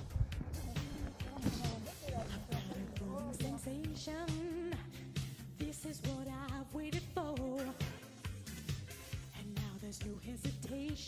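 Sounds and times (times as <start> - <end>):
pop music with beat: 0.0 - 11.0
person singing: 0.5 - 8.0.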